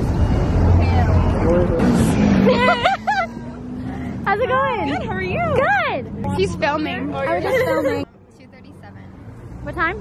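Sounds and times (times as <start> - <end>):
bus engine rumbling: 0.0 - 10.0
crowd voices chattering: 0.0 - 10.0.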